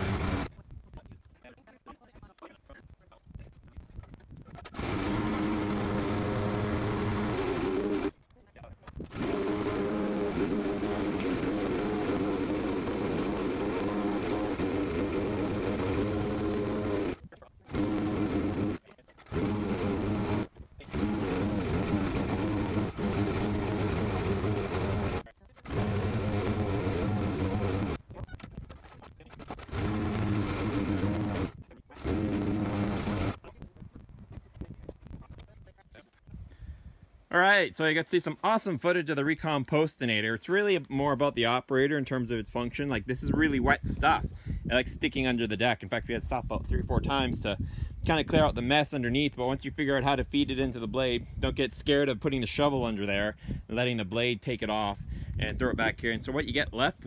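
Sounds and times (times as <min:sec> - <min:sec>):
small engine shredding compost: 0:00.0 - 0:00.5, 0:04.6 - 0:08.2, 0:08.9 - 0:28.2, 0:28.8 - 0:33.5.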